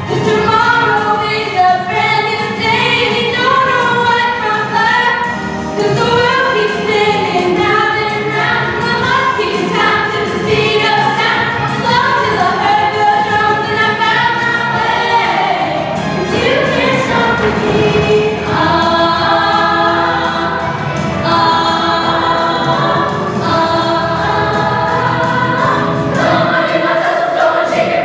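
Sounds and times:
ensemble singing musical song: 0:00.0 - 0:28.0
instrumental accompaniment: 0:00.0 - 0:28.0.

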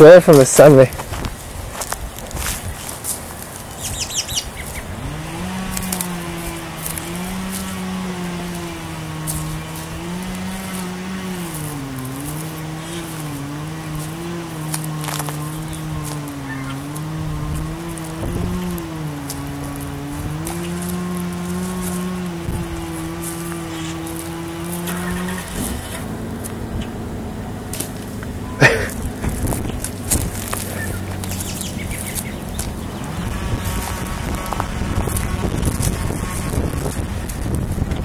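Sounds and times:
engine running: 0:00.0 - 0:38.0
wind on microphone: 0:15.4 - 0:20.8, 0:21.9 - 0:25.9, 0:29.0 - 0:38.0.

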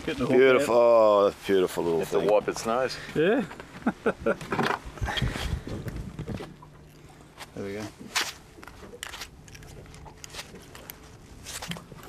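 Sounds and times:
hands handling fish and line: 0:02.0 - 0:12.0.

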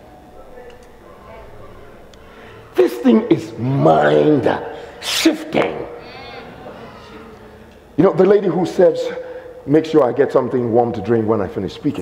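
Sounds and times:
person speaking: 0:00.3 - 0:09.2.

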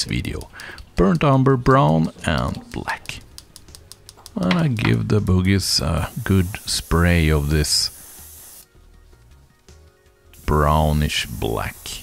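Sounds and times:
airbrush spraying hiss: 0:05.7 - 0:08.7, 0:10.4 - 0:12.0.

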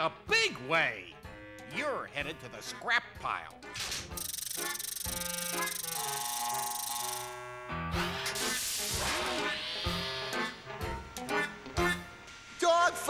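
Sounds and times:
slot machine reels spinning: 0:04.0 - 0:10.5
cartoon music: 0:04.2 - 0:12.2.

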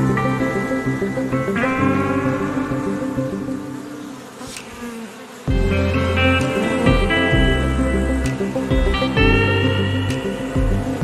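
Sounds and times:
background music: 0:00.0 - 0:04.4, 0:05.5 - 0:11.0
honey bees buzzing: 0:00.0 - 0:11.0.

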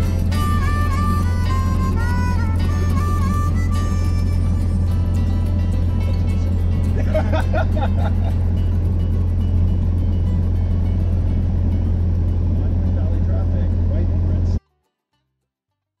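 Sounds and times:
propeller plane engine droning: 0:00.0 - 0:14.6.

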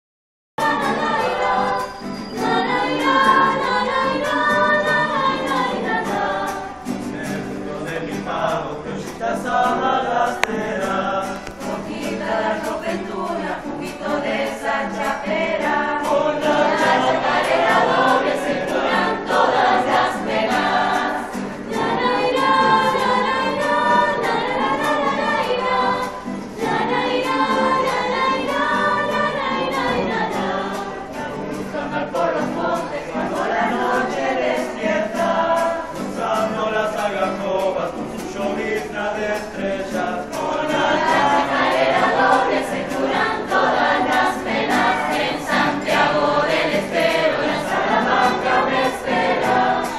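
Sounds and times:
acoustic guitar: 0:00.6 - 0:49.9
mixed choir singing: 0:00.6 - 0:49.9.

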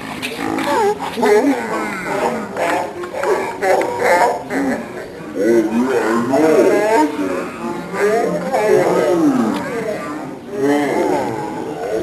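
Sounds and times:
slowed deep roar-like voices: 0:00.0 - 0:12.0.

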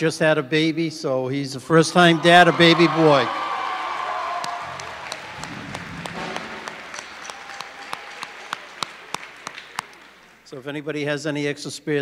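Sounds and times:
audience applauding: 0:02.1 - 0:10.5.

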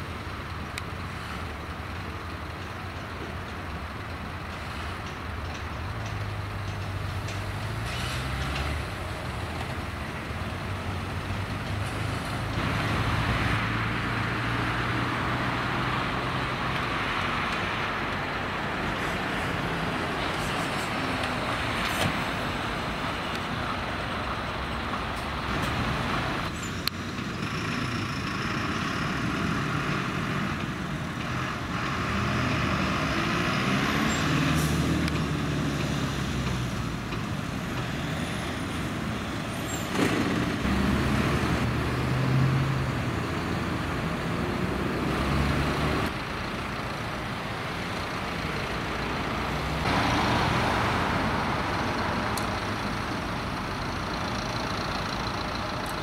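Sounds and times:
passing road traffic: 0:00.0 - 0:56.0
truck engine running: 0:35.1 - 0:56.0.

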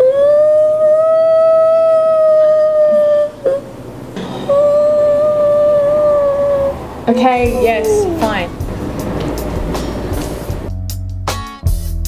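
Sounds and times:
person whining howl: 0:00.0 - 0:03.6, 0:04.5 - 0:08.7
person whimpering: 0:07.4 - 0:08.7.

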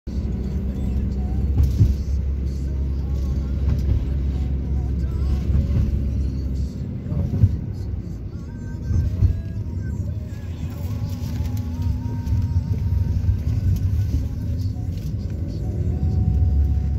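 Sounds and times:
vehicle road and engine rumble: 0:00.0 - 0:16.9.

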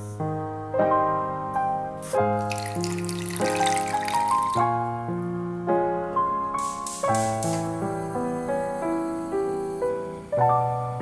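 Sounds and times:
piano music: 0:00.0 - 0:11.0
water pouring into saucepan: 0:02.4 - 0:04.8.

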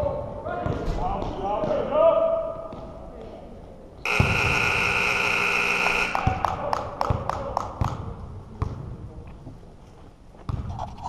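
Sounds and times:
scoreboard buzzer: 0:04.1 - 0:06.4.

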